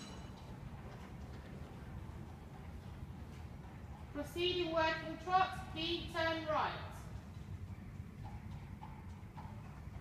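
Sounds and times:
horse hoofbeats on sand: 7.0 - 10.0.

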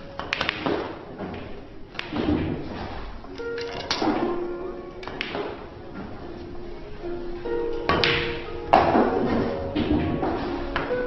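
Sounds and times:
pool balls clicking: 0.0 - 11.0.

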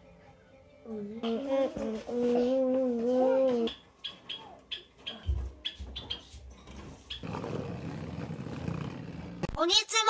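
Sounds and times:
small bird chirping: 3.7 - 6.3, 7.1 - 7.3.

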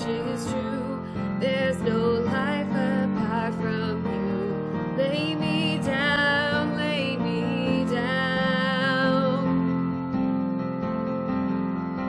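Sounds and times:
woman singing with vibrato: 0.0 - 9.6
instrumental accompaniment: 0.0 - 12.0.

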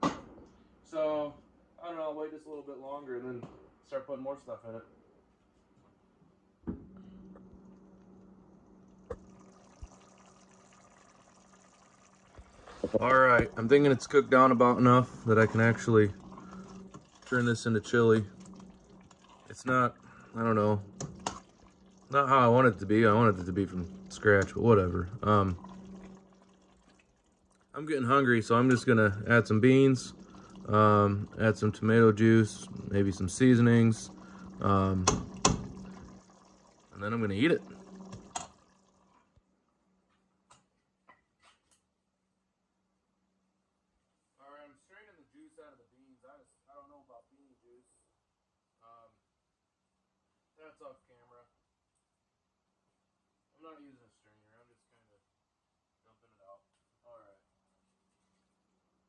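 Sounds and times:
low steady hum: 6.4 - 39.4
pot simmering bubbling: 7.0 - 39.3
wet stirring of thick food: 8.9 - 27.8.

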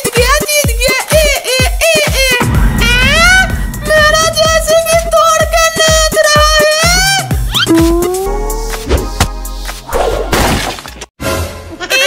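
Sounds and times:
background music: 0.0 - 10.4
shattering crash: 2.4 - 6.0.

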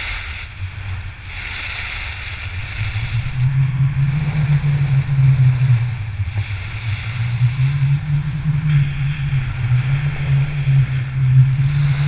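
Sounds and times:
skis carving snow: 0.0 - 12.0
wind buffeting microphone: 0.0 - 12.0.

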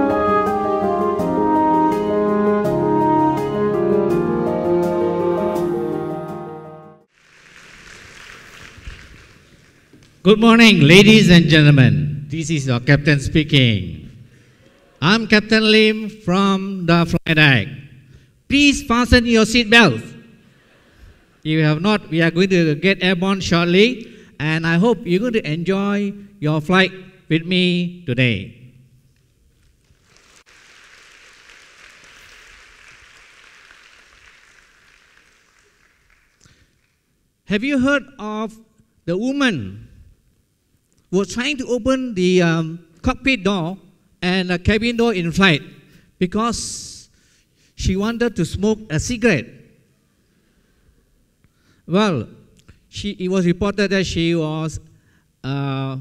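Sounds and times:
faint audience applause: 7.1 - 10.2, 29.8 - 37.2.

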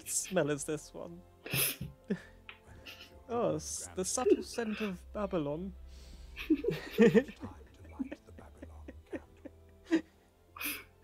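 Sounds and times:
men laughing: 1.5 - 3.0, 6.3 - 10.8.

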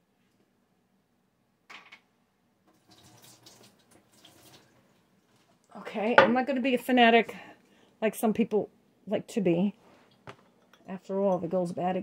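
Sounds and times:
water pouring in thin stream: 2.7 - 4.9.

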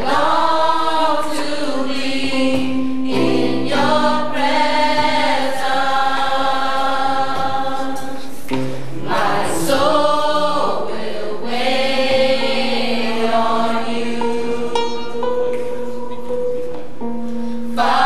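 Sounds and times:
gospel choir singing: 0.0 - 15.9, 17.7 - 18.0.

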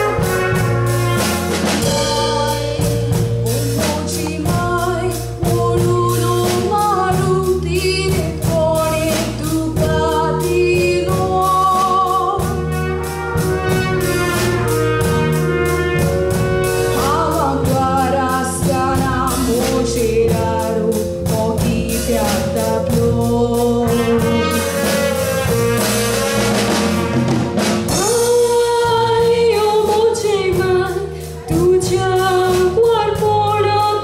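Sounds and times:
band with steady beat: 0.0 - 34.0
woman singing: 1.6 - 12.8, 16.9 - 25.2, 27.9 - 34.0.

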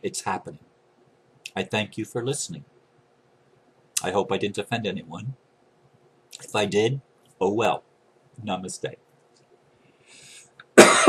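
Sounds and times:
man coughing: 10.8 - 11.0.

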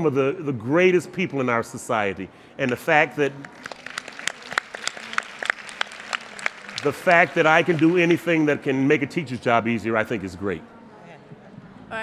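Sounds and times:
scattered audience applause: 2.6 - 8.9.

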